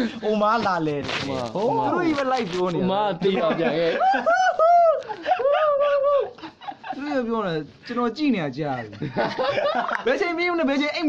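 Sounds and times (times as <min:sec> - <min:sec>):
young men laughing and calling out: 0:01.6 - 0:11.0.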